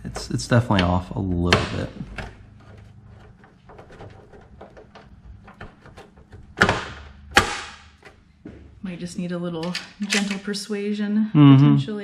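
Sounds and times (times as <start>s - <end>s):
sharp metal knocks: 5.5s - 8.0s.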